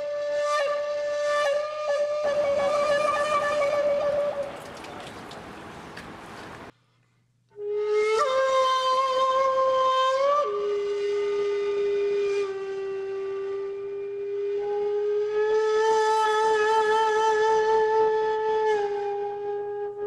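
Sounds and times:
breathy flute long notes: 0.0s - 6.0s, 7.6s - 20.0s.

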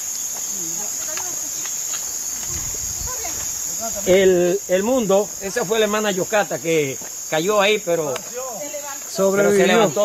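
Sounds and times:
night insects chorus: 0.0s - 10.0s.

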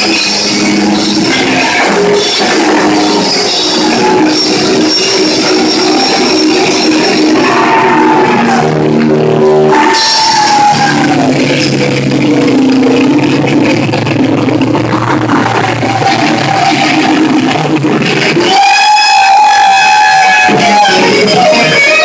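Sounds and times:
held high note: 0.0s - 14.4s
live rock band playing: 0.0s - 22.0s.

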